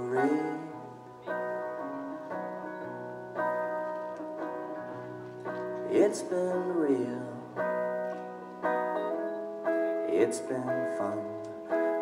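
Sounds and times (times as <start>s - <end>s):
acoustic guitar chords ringing: 0.0s - 12.0s.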